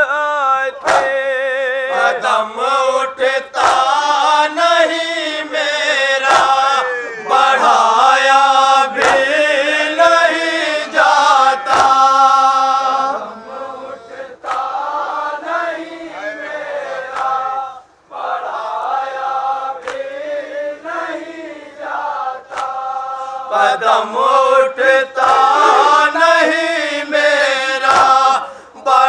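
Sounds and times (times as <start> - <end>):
men chanting through microphone: 0.0 - 29.0.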